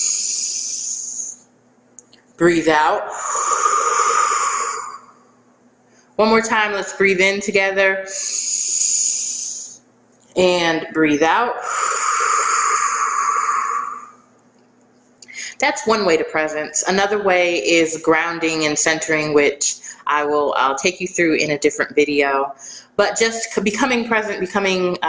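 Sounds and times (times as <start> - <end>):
woman exhaling slowly: 0.0 - 1.4, 3.0 - 5.3, 8.1 - 9.8, 11.6 - 14.2
woman breathing in through nose: 3.1 - 5.2, 8.1 - 9.8, 11.6 - 14.2.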